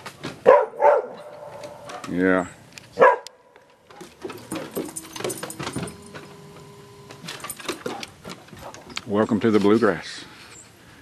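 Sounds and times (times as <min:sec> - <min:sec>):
dog barking: 0:00.4 - 0:02.1, 0:03.0 - 0:03.4.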